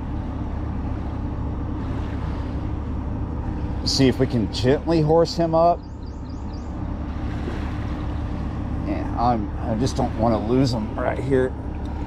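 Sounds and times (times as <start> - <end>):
faint hum: 0.0 - 12.0
low drone of ship machinery: 0.0 - 12.0.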